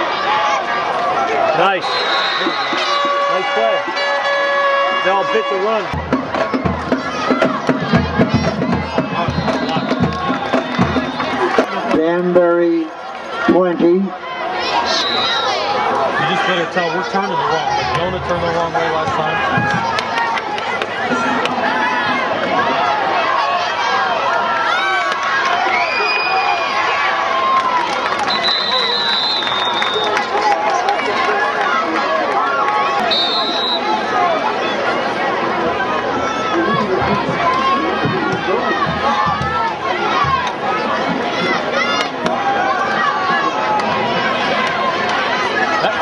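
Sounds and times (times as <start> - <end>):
crowd talking and shouting: 0.0 - 46.0.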